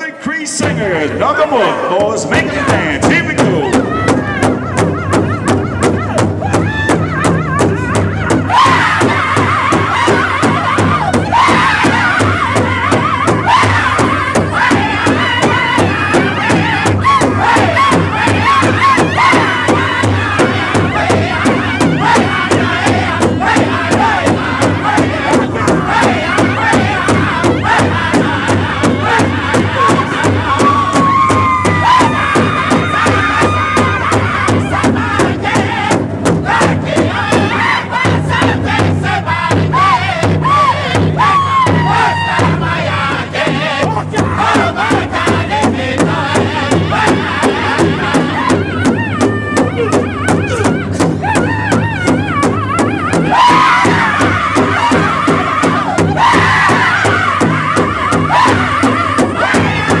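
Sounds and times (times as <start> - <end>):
large drum steady beat: 0.6 - 60.0
men singing high-pitched chant: 0.7 - 60.0.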